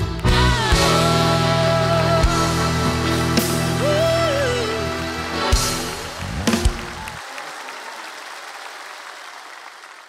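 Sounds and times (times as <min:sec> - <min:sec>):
live band chords: 0:00.0 - 0:07.2
audience applause: 0:02.0 - 0:10.0.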